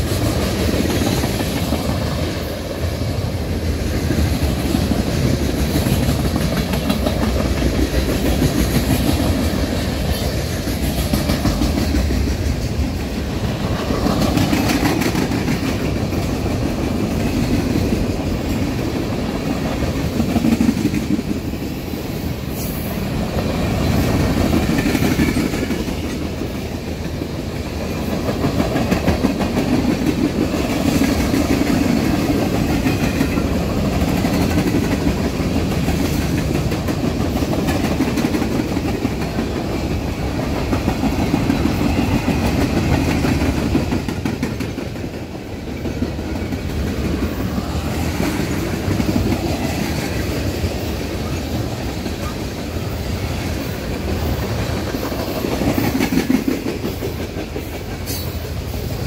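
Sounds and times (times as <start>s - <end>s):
clickety-clack over rail joints: 0.0s - 59.0s
freight train wheels rumbling: 0.0s - 59.0s.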